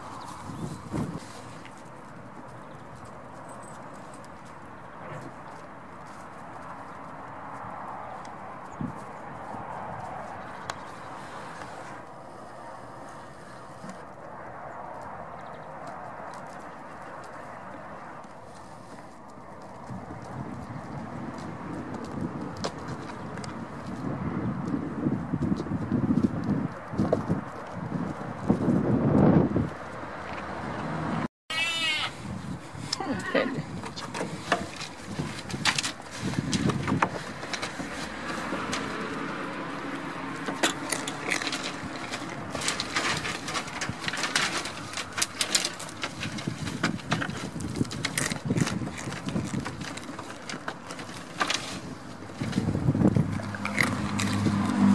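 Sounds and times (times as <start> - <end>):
straw rustling: 0.0 - 24.2, 31.7 - 54.9
hooves knocking on wooden logs: 0.0 - 54.9
goat bleating: 31.5 - 32.2, 32.9 - 33.6.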